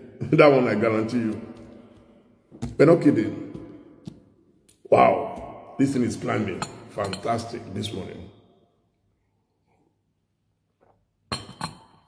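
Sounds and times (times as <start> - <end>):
ceramic mug clinking on table: 6.5 - 7.5, 11.3 - 12.0.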